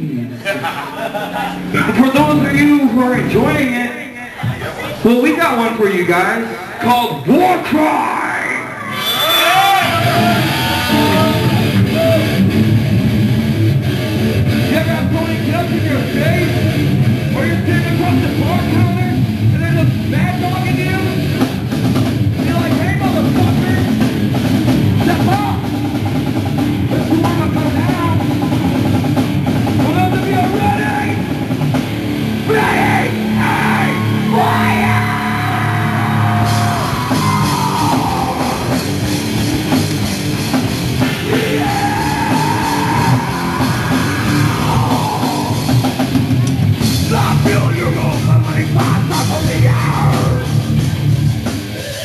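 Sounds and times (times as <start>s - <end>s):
distorted electric guitars: 0.0s - 52.0s
pounding drum kit: 1.5s - 3.8s, 9.3s - 52.0s.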